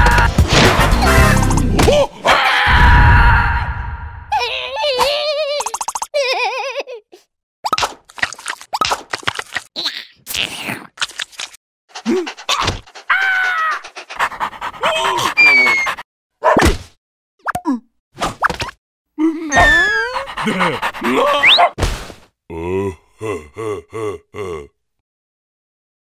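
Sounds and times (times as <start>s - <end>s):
cartoon yelps and squeals: 4.3s - 6.5s, 12.5s - 13.8s, 14.8s - 16.6s, 19.4s - 20.3s, 21.1s - 21.8s.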